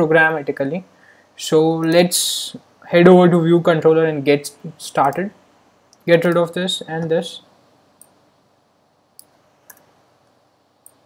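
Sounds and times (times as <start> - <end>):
computer mouse clicks: 9.2 - 9.9.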